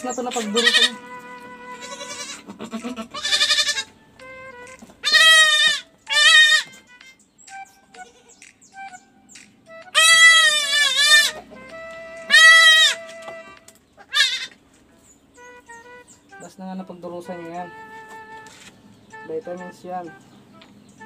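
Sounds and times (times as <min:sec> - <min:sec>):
goat kids bleating: 0:00.0 - 0:04.0, 0:05.0 - 0:06.9, 0:07.9 - 0:08.4, 0:09.9 - 0:11.5, 0:12.2 - 0:14.7.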